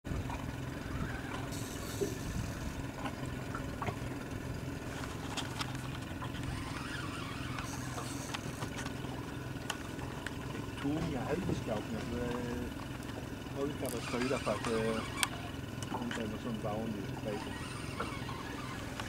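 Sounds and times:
boat engine running: 0.0 - 19.0.

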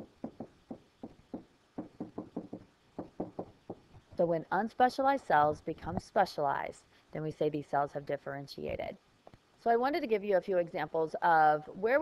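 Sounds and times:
stylus tapping on writing tablet: 0.2 - 3.9.

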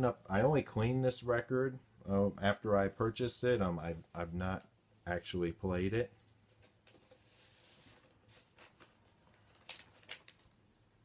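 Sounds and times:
record sleeve rustling: 6.2 - 10.6.

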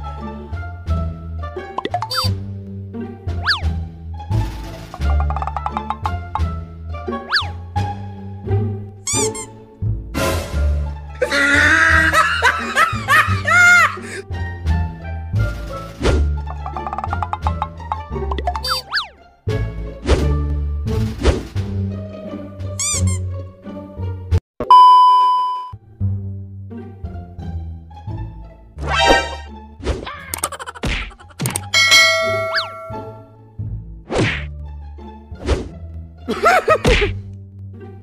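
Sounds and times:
comic background music: 0.0 - 24.4, 25.8 - 38.0
metallic ding: 31.7 - 33.3
sharp whack hits: 36.8 - 37.2.

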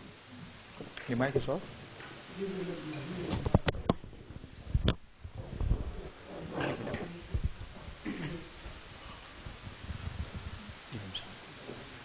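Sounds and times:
thumps and rubbing on microphone: 3.2 - 12.0
microphone clicks and knocks: 3.3 - 10.9.

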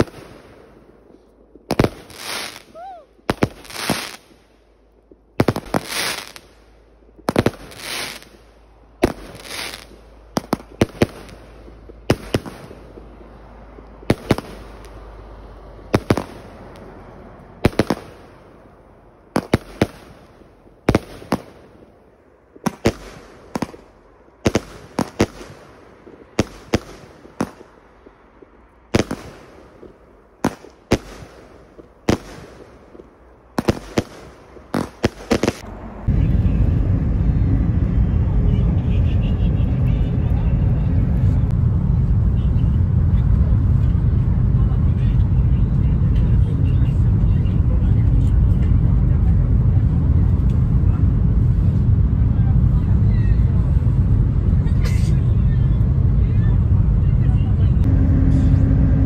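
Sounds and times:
fireworks bangs: 0.0 - 59.0
low rumble of moving vehicle: 0.0 - 59.0.

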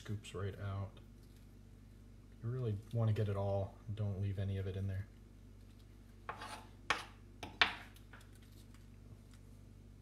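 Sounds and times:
metal spoon scraping artichoke: 6.2 - 7.2.

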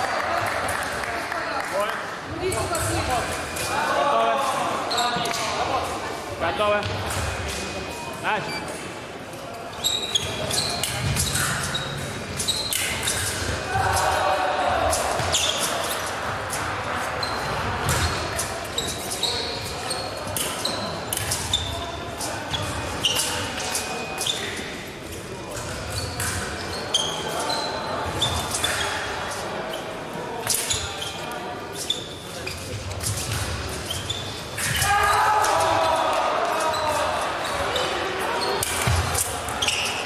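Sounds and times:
voices in echoing hall: 0.0 - 40.0.

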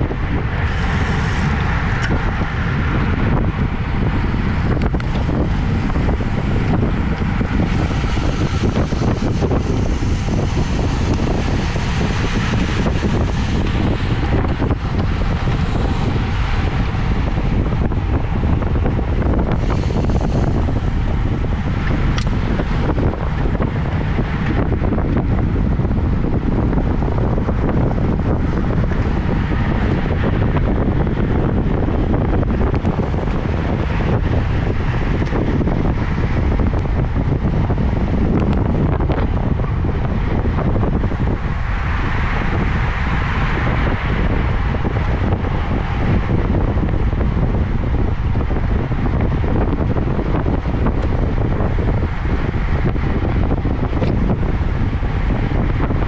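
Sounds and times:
wind noise on microphone: 0.0 - 56.0.

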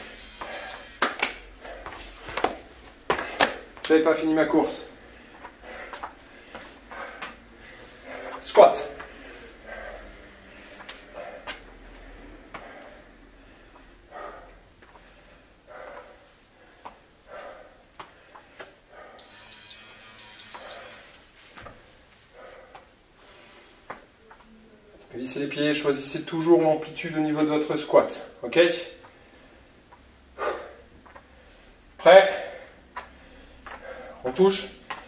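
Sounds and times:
high-pitched electronic beeps: 0.1 - 1.0.

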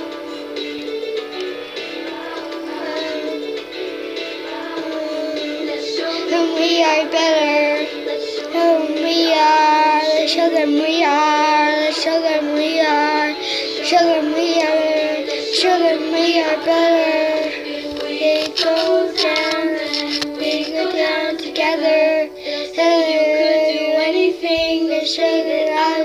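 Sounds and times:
pop backing music: 0.0 - 26.0
girl singing: 1.8 - 26.0.

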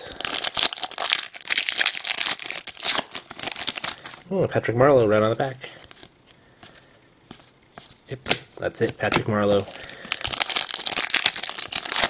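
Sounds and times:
foil wrapper crinkling: 0.0 - 4.2, 9.4 - 12.0.

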